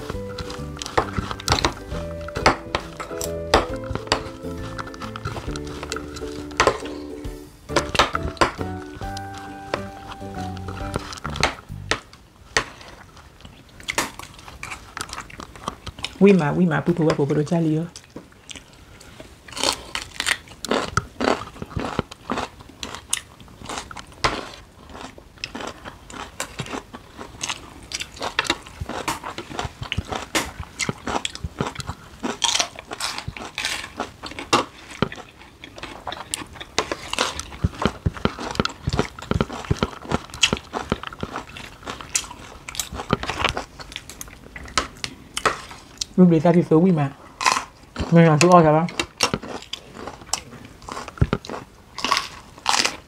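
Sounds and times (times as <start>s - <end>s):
crunching and chewing vegetables: 0.0s - 46.2s, 47.0s - 53.0s.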